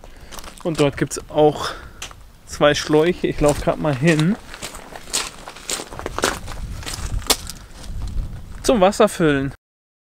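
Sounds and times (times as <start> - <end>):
footsteps on wood chips: 0.0 - 8.7.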